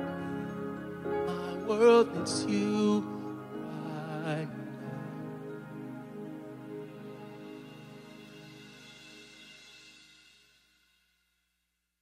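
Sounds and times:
cymbals: 6.5s - 11.3s.

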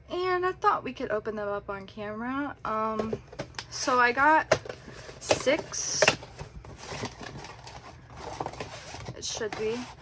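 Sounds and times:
cardboard box being opened: 6.2s - 10.0s.

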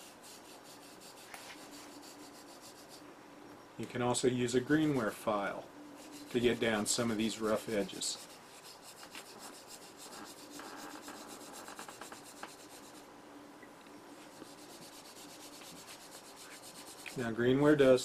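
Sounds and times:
file scraping clay cup rim: 0.0s - 3.0s, 6.0s - 13.0s, 14.3s - 17.2s.

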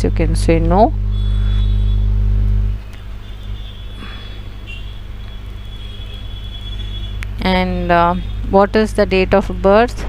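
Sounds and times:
faint high whine: 0.0s - 10.0s
low electrical hum: 0.0s - 10.0s.

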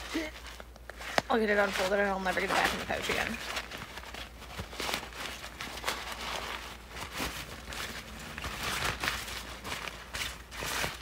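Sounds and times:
nylon bag rustling and crinkling: 0.0s - 11.0s.

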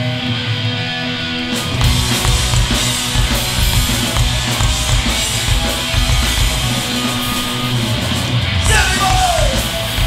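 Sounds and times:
punk band playing live: 0.0s - 10.0s
vocalist yelling: 8.6s - 9.7s.

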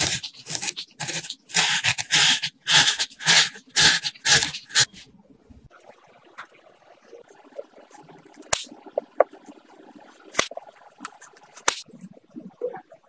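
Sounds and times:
dough rolling in sugar: 0.0s - 5.0s.

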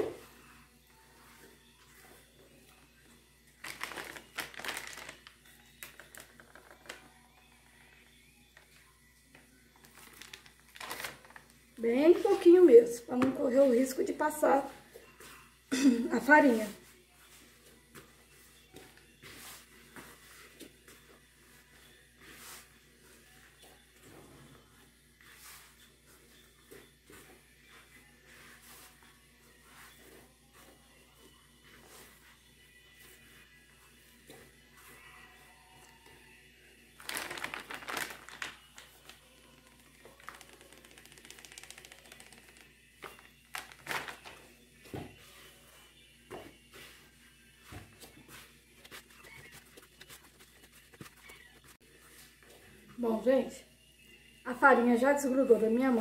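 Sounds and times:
hands kneading dough: 16.3s - 24.1s, 25.0s - 52.6s.

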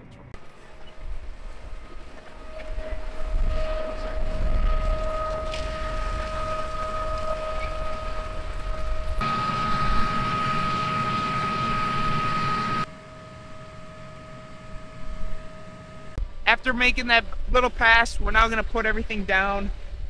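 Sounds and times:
rushing noise: 0.0s - 12.9s
tractor machine whine: 0.0s - 16.2s.

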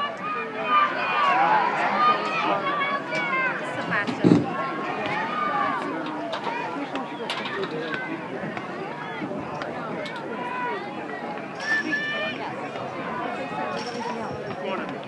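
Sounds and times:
spectators shouting and cheering: 0.0s - 15.0s.

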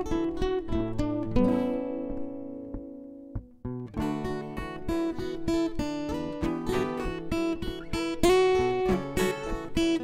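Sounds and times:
acoustic guitar music: 0.0s - 10.0s.

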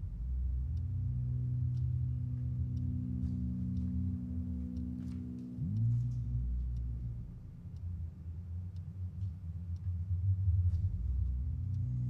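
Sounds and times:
faint ticking: 0.0s - 12.0s
low rumbling drone: 0.0s - 12.0s
sustained musical tones: 0.9s - 7.9s.

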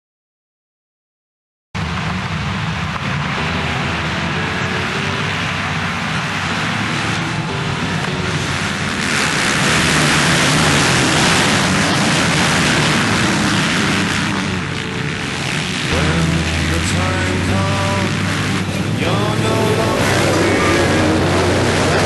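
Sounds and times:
motocross motorcycles racing: 2.1s - 22.0s.

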